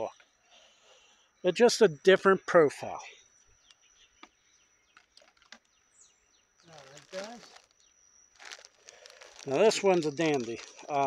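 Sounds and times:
bird chirp: 2.4 - 9.2.

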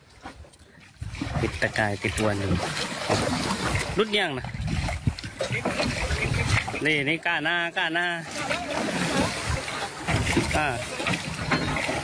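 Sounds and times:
water splashing against boat: 0.0 - 12.0.

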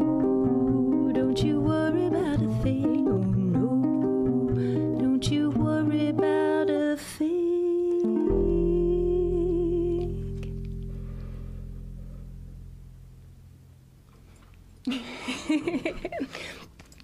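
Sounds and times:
ukulele playing: 0.0 - 13.7
double bass playing: 0.0 - 14.8.

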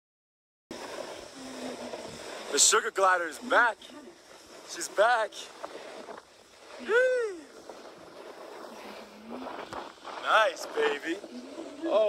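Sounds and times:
skis sliding on snow: 0.7 - 12.0
wind over microphone: 0.7 - 12.0.

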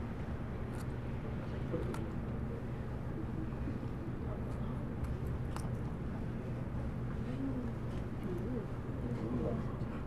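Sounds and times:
room hum: 0.0 - 10.0
faint background voices: 6.2 - 10.0.

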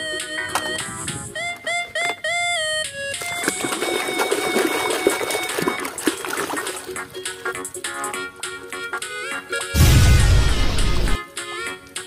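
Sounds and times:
water sloshing in a tub: 3.2 - 7.2.

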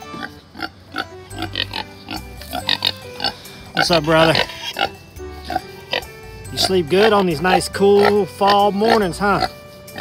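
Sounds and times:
pig grunting: 0.0 - 10.0.

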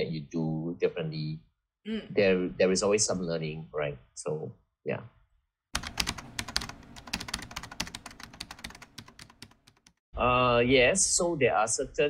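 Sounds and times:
keyboard typing clicks: 5.8 - 10.0.

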